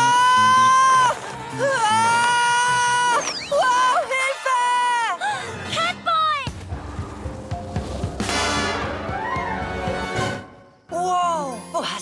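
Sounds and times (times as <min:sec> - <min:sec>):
action music with low beat: 0:06.5 - 0:10.3.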